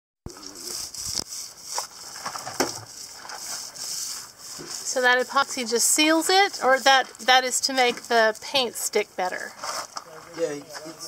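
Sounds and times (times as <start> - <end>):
epoxy scraping and crinkling: 0.3 - 11.0.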